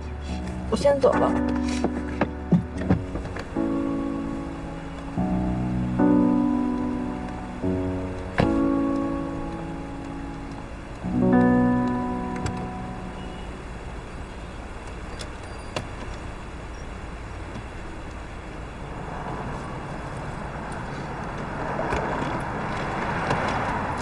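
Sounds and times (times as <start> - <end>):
traffic hum: 0.0 - 24.0
car driving past: 18.6 - 24.0.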